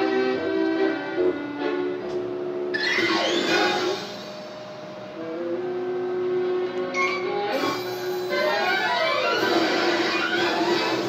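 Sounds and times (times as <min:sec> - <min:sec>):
cartoon soundtrack music: 0:00.0 - 0:11.0.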